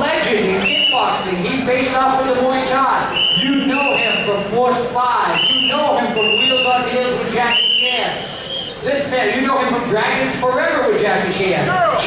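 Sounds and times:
man announcing: 0.0 - 12.0.

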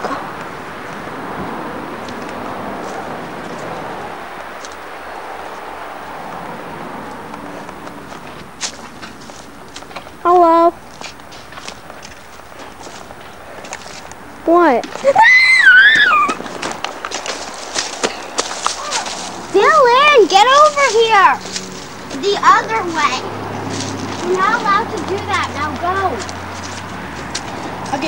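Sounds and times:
footsteps on grass: 0.4 - 28.0
child screaming: 15.0 - 16.4, 18.8 - 19.2
person shouting: 15.0 - 16.4
rustling: 16.2 - 23.1.

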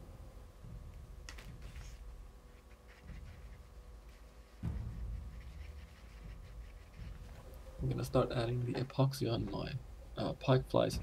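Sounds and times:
stick scraping on paper: 1.3 - 7.5.

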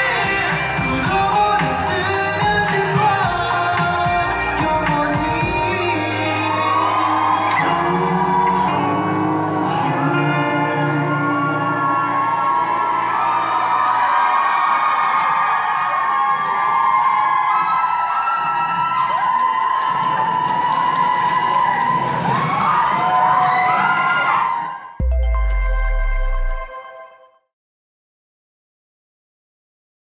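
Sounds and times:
audience cheering and screaming: 0.0 - 25.1.

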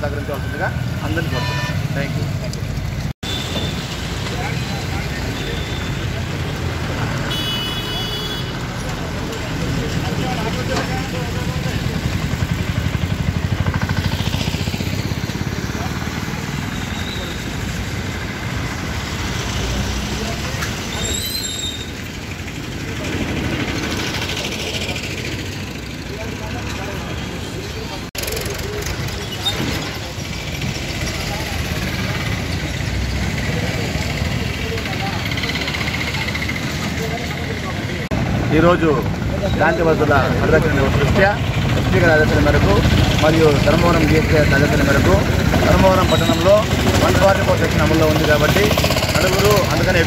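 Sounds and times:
traffic and vehicle engines: 0.0 - 50.0.

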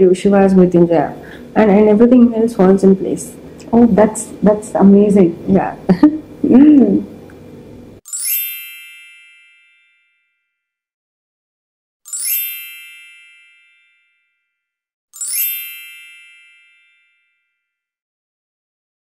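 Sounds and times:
bright high-pitched chimes: 8.1 - 10.4, 12.1 - 14.4, 15.2 - 17.6.

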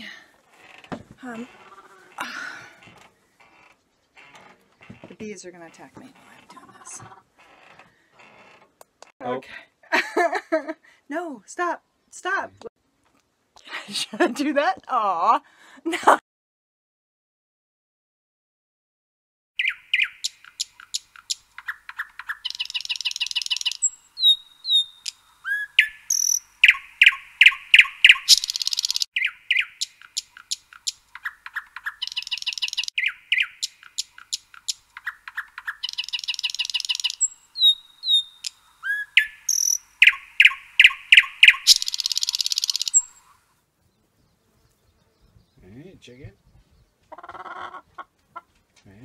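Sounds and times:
songbird chirps and trills: 19.6 - 49.0.

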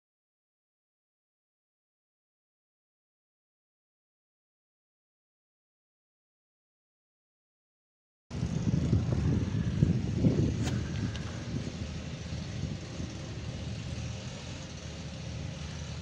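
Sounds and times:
vehicle engine idling: 8.3 - 16.0.

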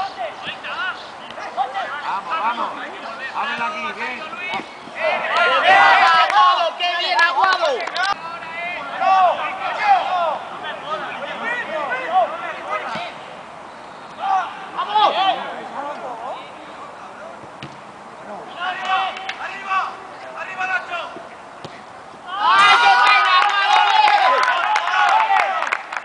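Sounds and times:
voices shouting: 0.0 - 16.5, 22.2 - 25.7.

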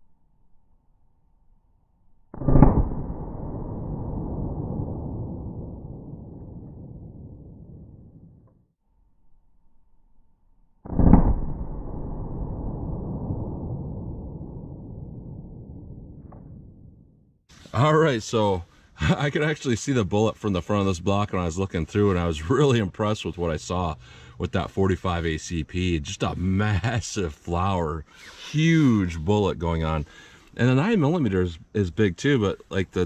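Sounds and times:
slowed-down pistol shots booming: 2.3 - 8.5, 10.8 - 17.1.

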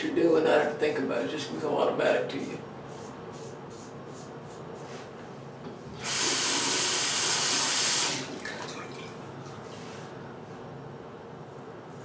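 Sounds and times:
sink tap running: 6.0 - 9.0.

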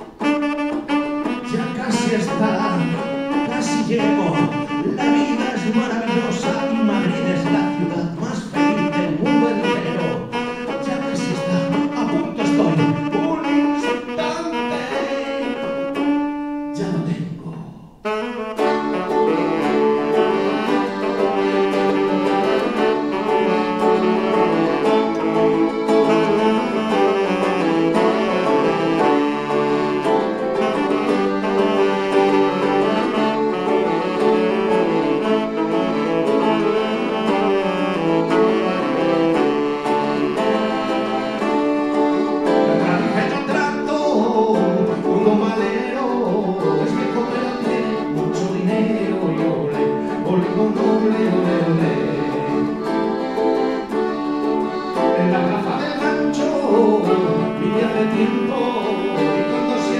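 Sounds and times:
acoustic guitar accompaniment: 0.0 - 59.9
saxophone melody: 0.0 - 59.9.

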